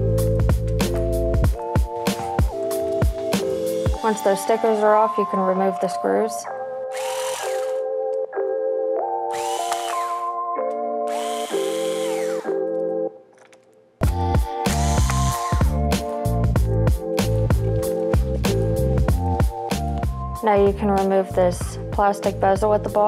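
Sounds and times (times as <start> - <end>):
background music with steady beat: 0.0 - 13.0, 14.0 - 23.0
electric screwdriver running: 6.9 - 7.8, 9.3 - 10.4, 11.1 - 12.6.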